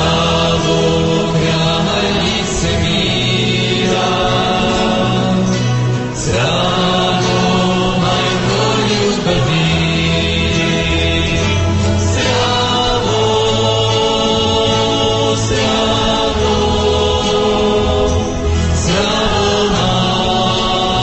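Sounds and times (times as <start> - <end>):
choir singing sacred music: 0.0 - 21.0.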